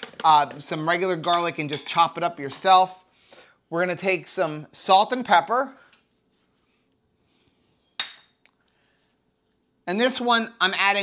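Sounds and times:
metal measuring cups clinking: 0.1 - 2.8.

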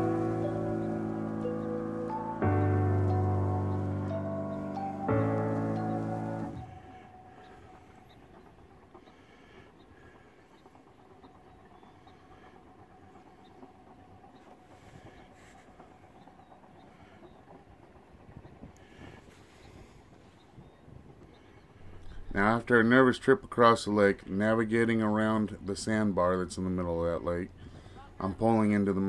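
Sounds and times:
boat engine rumbling: 0.0 - 29.0.

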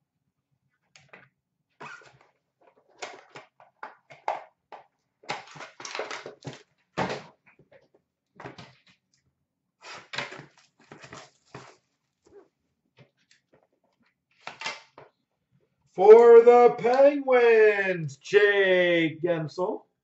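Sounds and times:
cardboard packaging rustling: 10.4 - 12.3.

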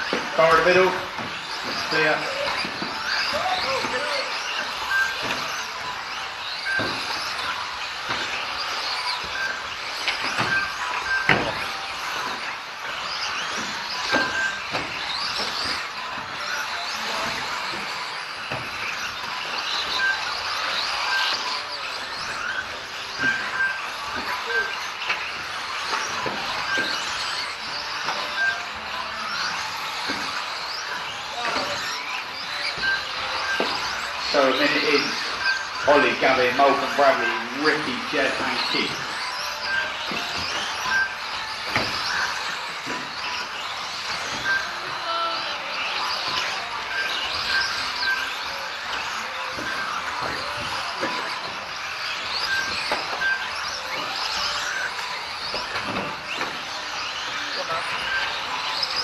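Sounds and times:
rc car motors whining: 0.0 - 59.0.

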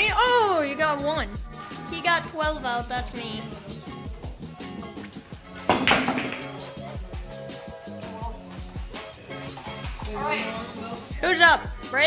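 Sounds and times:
background music with beat: 0.0 - 12.0
pool balls clacking: 5.5 - 7.0.

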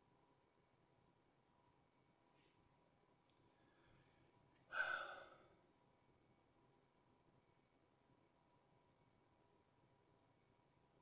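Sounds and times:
faint click: 3.2 - 3.5
person sighing: 4.7 - 5.6.

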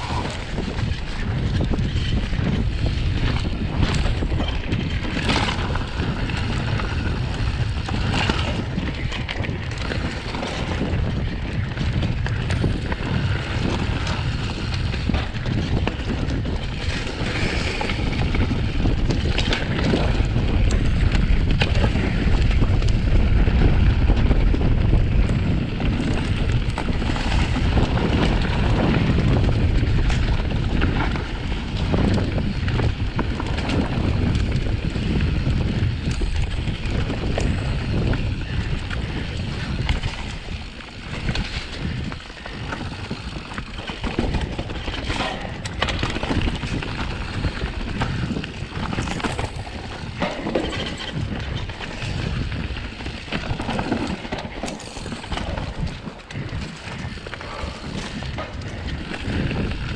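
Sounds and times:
bike knocking and rattling: 0.0 - 59.9
wind buffeting microphone: 0.0 - 59.9.

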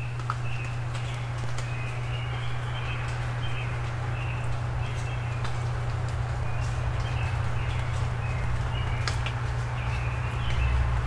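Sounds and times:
songbirds calling: 0.0 - 11.0
steady low hum: 0.0 - 11.0.

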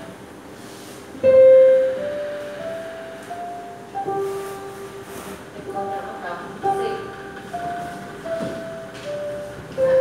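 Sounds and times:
digital piano notes: 0.0 - 0.4, 1.2 - 10.0.

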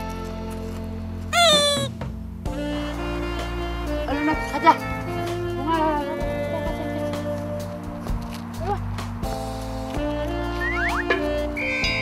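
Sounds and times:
background music: 0.0 - 12.0
high-pitched animal cry: 1.3 - 1.9.

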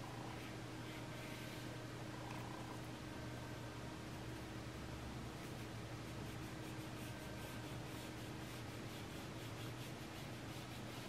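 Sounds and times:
low hum and hiss: 0.0 - 11.0
paintbrush rubbing on paper: 5.4 - 11.0.

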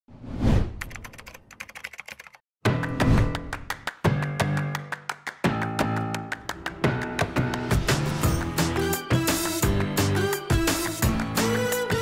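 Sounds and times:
keyboard typing clicks: 0.8 - 2.4.

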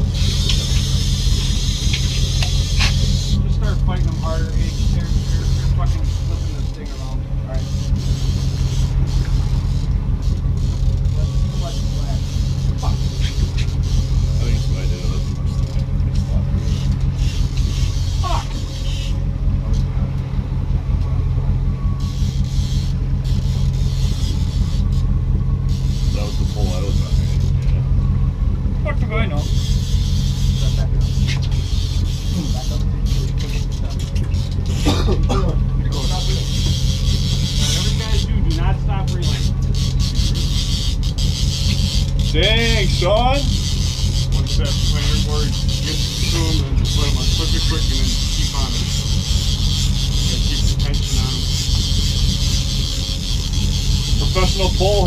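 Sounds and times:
boat engine droning: 0.0 - 55.0.

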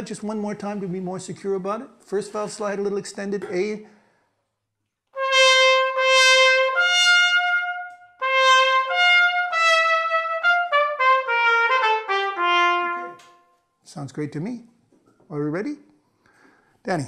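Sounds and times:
piccolo trumpet solo: 5.2 - 13.5.

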